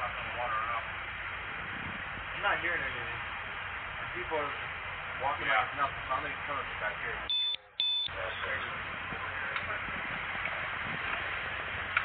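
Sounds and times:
distant indistinct voices: 0:00.0 - 0:12.0
steady background hiss: 0:00.0 - 0:12.0.

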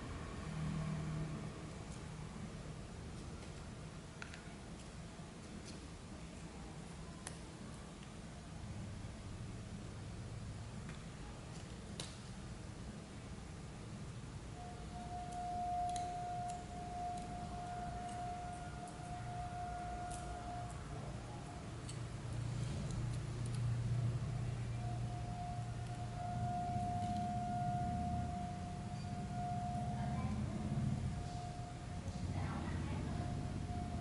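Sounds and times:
low hum: 0:14.5 - 0:34.0
steady high tone: 0:14.5 - 0:34.0.

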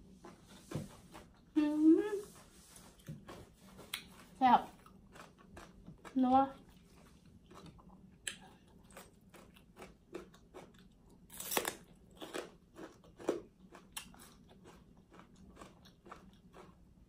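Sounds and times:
close chewing with mouth smacks: 0:03.0 - 0:11.2, 0:12.2 - 0:16.8.

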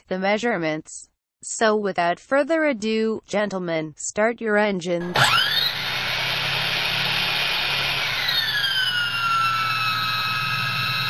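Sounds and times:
hand drill whining: 0:05.0 - 0:11.0.

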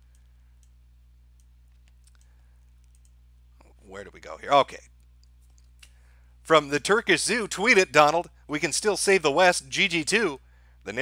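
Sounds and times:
low electrical hum: 0:00.0 - 0:11.0
computer mouse clicking: 0:00.1 - 0:00.8, 0:01.4 - 0:03.2
man speaking: 0:03.6 - 0:04.9, 0:06.5 - 0:11.0.

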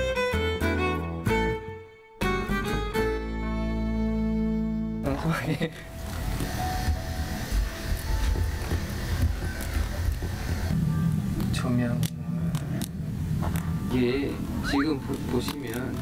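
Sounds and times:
quiet background music: 0:00.0 - 0:16.0.

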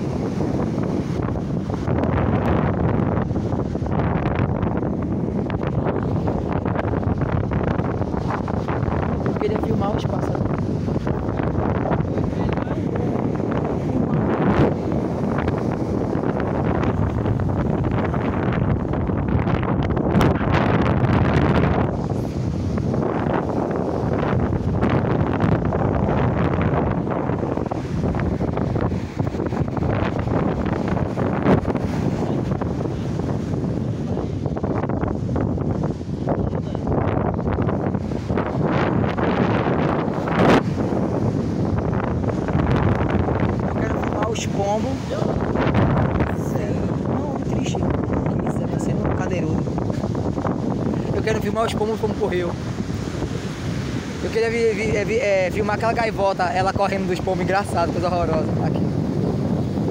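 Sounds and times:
surf washing on beach: 0:00.0 - 0:59.9
wind buffeting microphone: 0:00.0 - 0:59.9.

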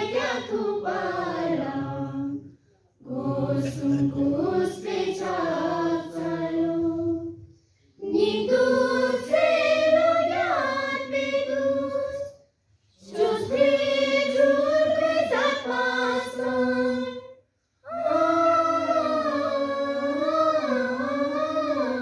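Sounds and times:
students singing unaccompanied: 0:00.0 - 0:12.4, 0:13.0 - 0:22.0.

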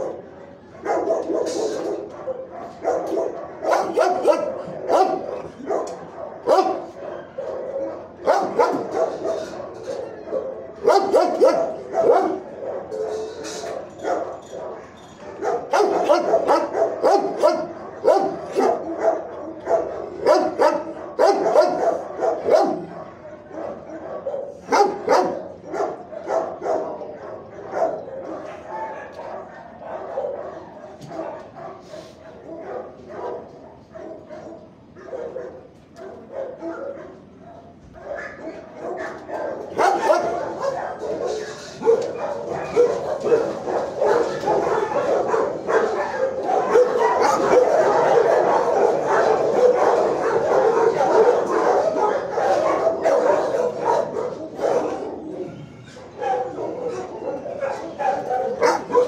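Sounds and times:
dogs barking: 0:00.0 - 0:59.0.

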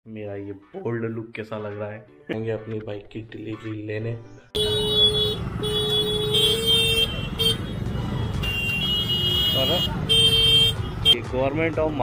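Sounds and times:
vehicle horns blaring: 0:04.6 - 0:11.2
motorcycle engines: 0:04.6 - 0:12.0.

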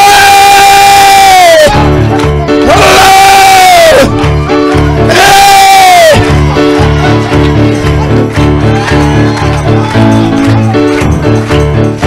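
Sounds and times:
long loud held cries: 0:00.0 - 0:01.7, 0:02.7 - 0:04.1, 0:05.0 - 0:06.2
church band playing driving beat: 0:00.0 - 0:12.0.

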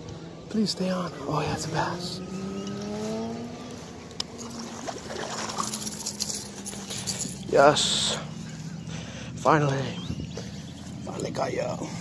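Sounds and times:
engine rising in pitch: 0:00.0 - 0:11.8
low motor hum: 0:00.0 - 0:12.0
faint water splashing: 0:04.2 - 0:07.4.

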